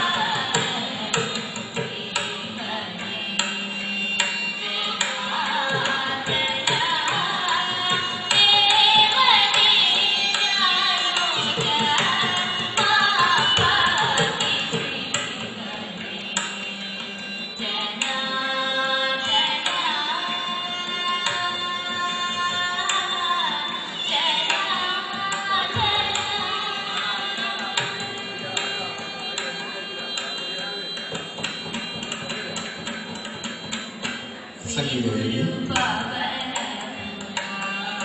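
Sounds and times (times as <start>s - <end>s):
mridangam drum strokes: 0.0s - 38.0s.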